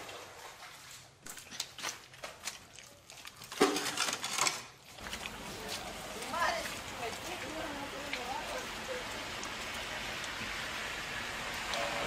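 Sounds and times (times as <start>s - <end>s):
steady rain falling: 5.0s - 12.0s.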